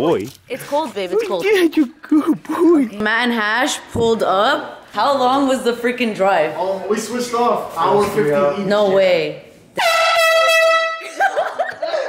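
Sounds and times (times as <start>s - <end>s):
air horn blast: 9.8s - 11.1s
people laughing: 11.0s - 12.0s.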